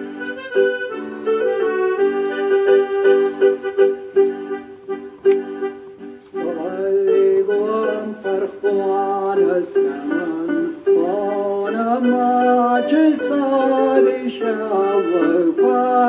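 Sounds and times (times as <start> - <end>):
accordion playing chords: 0.0 - 16.0
man singing: 6.4 - 16.0.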